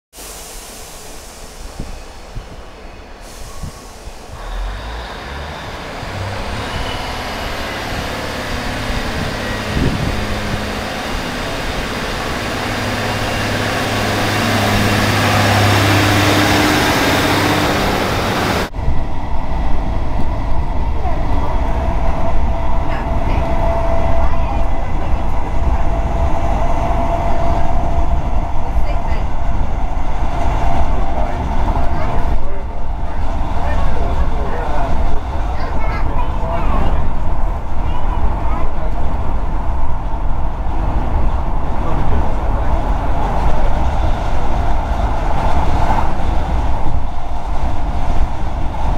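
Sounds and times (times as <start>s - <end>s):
diesel railcar engine and wheels: 0.1s - 48.9s
rumble inside moving train: 5.7s - 48.9s.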